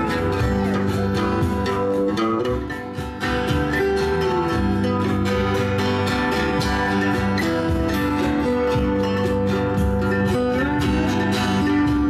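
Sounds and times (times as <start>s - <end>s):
drum kit steady beat: 0.0s - 12.0s
hand drums: 0.0s - 12.0s
plucked mandolin: 0.0s - 12.0s
strummed acoustic guitars: 0.0s - 12.0s.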